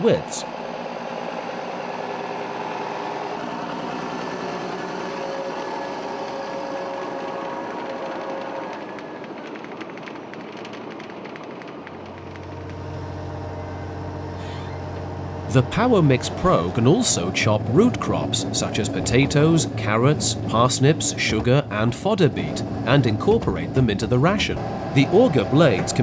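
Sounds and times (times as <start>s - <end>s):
tractor engine running: 0.0s - 26.0s
deep low hum: 12.2s - 26.0s.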